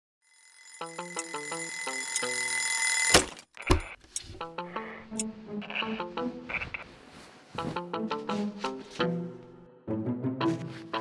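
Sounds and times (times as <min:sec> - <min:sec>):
alarm clock bells ringing: 0:00.3 - 0:03.2.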